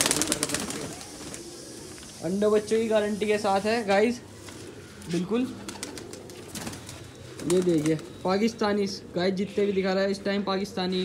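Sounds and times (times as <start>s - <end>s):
pigeons flapping wings: 0.0s - 2.2s, 5.5s - 8.3s
pigeons cooing: 0.0s - 11.0s.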